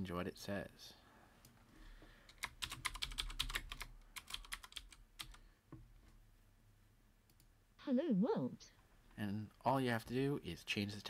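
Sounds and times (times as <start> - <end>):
typing on computer keyboard: 2.3 - 5.4.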